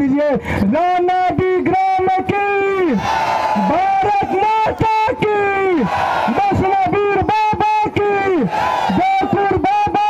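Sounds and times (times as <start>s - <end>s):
crowd: 0.0s - 10.0s.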